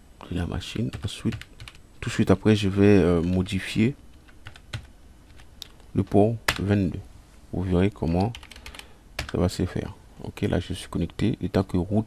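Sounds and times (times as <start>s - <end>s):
computer keyboard typing: 0.9s - 1.8s, 4.2s - 5.5s, 8.1s - 9.4s.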